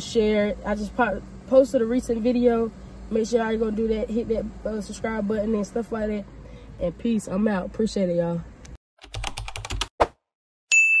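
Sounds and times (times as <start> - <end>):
keyboard typing clicks: 9.0 - 9.9
bell ding: 10.7 - 11.0.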